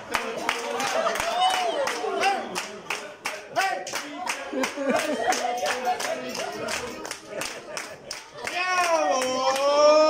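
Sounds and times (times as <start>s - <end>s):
people clapping in rhythm: 0.0s - 10.0s.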